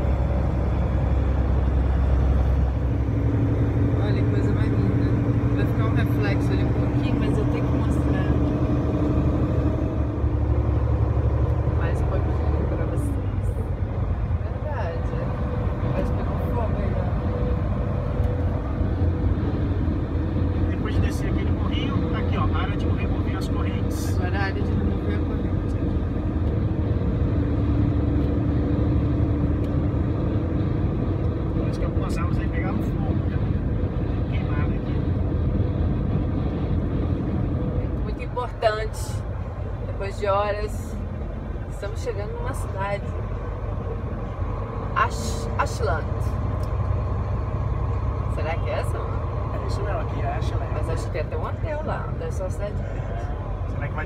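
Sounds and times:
road rumble: 0.0s - 54.0s
truck engine drone: 0.0s - 54.0s.

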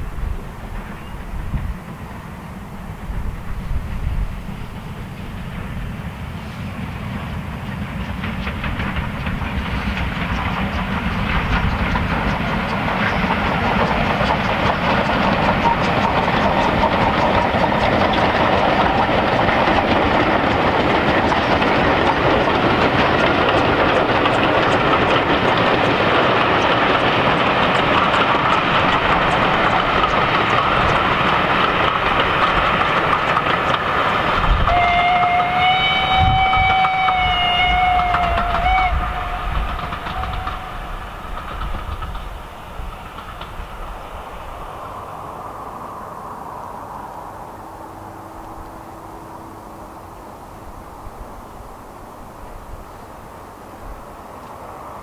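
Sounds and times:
train rail rumble: 0.0s - 55.0s
steam whistle blast: 34.6s - 40.8s.

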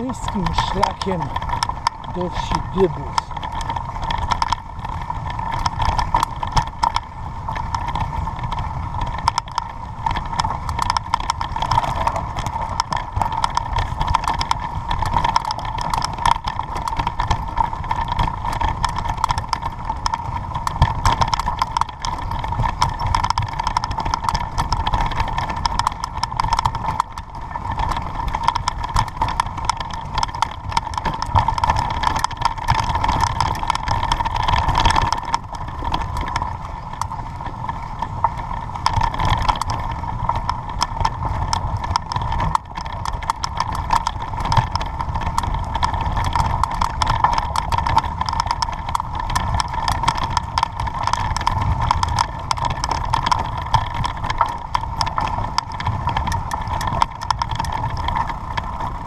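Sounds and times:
bicycle rumbling on dirt track: 0.0s - 59.0s
bike rattling and knocking: 0.0s - 59.0s.

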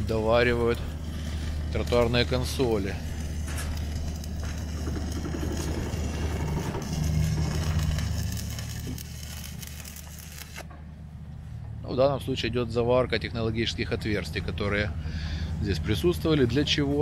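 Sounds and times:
welding arc crackling: 0.0s - 10.7s
low engine-like hum: 0.0s - 17.0s.

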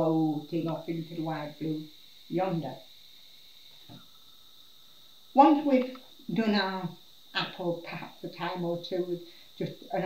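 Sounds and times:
faint high hiss: 0.0s - 10.0s.

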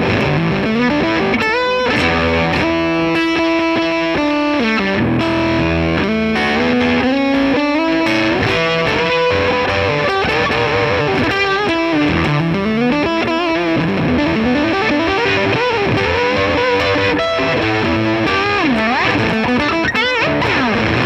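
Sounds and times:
distorted electric guitar lead: 0.0s - 21.0s.

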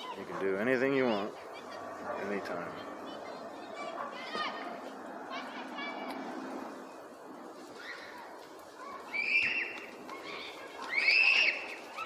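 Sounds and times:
steady background hum: 0.0s - 12.0s
shrill high-pitched cries: 9.1s - 9.8s.

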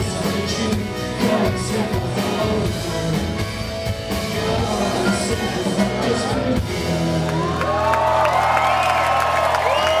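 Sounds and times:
rock band drums: 0.0s - 10.0s
crowd whooping: 7.2s - 10.0s.

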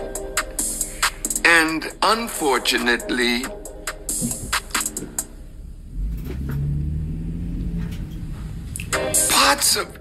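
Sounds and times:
low rumble with deep hum: 4.0s - 8.9s.

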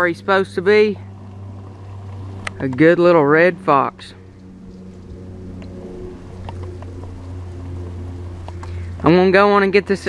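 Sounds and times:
engine idling: 0.0s - 10.0s.

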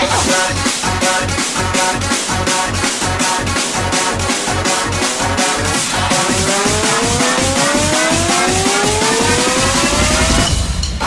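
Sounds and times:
driving electronic dance beat: 0.0s - 11.0s
rising synth tone: 0.6s - 10.5s.

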